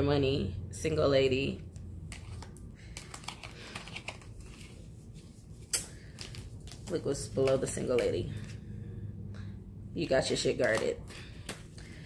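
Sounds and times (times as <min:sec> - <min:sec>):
cards clicking and tapping: 0:01.7 - 0:04.7, 0:05.7 - 0:08.2, 0:10.4 - 0:12.0.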